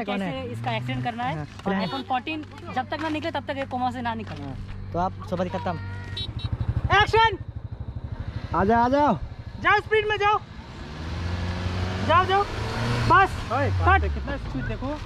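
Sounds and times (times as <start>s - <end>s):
engine idling: 0.6s - 10.6s
people calling out: 5.2s - 7.4s
car passing by: 10.4s - 15.0s.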